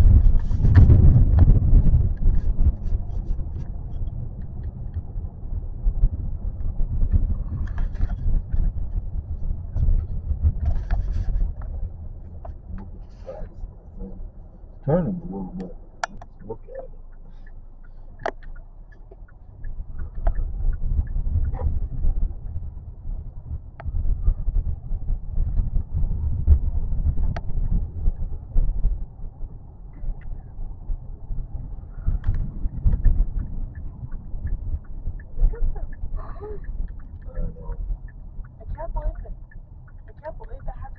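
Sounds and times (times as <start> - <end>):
low uneven rumble: 0.0 - 40.9
faint voices: 12.6 - 17.3, 35.4 - 37.9
sharp clicks: 15.6 - 21.8.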